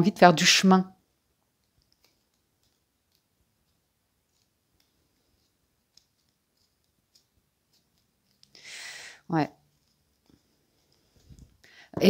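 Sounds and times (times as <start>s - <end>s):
cards clicking while shuffled: 1.4s - 8.7s, 9.6s - 11.6s.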